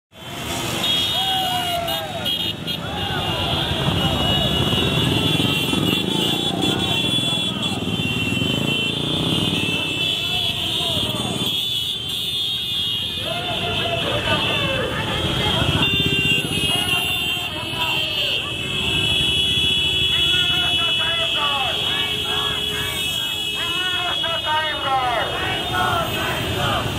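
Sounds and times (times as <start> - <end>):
horns sounding: 0.1 - 26.9
motorcycle engines running: 0.2 - 24.2, 25.0 - 26.9
crowd shouting: 0.3 - 11.4, 13.1 - 19.2, 20.1 - 26.9.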